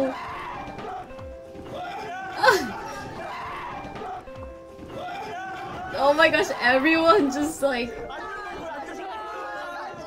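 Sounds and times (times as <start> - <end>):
young men talking over one another: 0.0 - 10.0.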